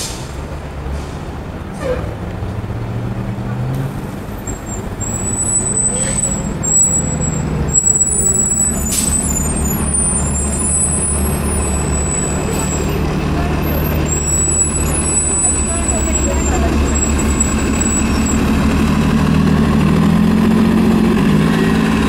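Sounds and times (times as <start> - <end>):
air brake hiss: 0.0 - 1.3
bus engine running low: 0.0 - 22.0.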